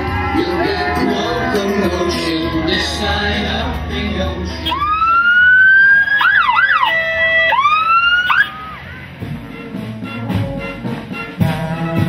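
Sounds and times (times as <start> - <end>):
siren wailing and whooping: 4.6 - 8.9.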